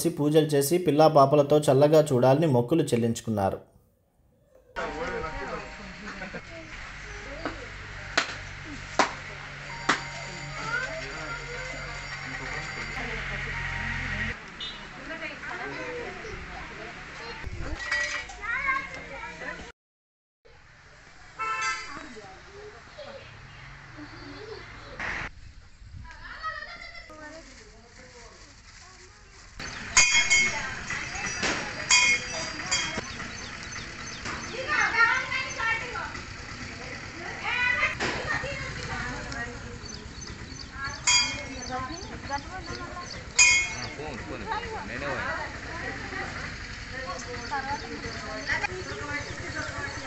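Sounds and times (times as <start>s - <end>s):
women and children chattering: 6.2s - 19.7s, 21.0s - 25.0s, 26.0s - 50.0s.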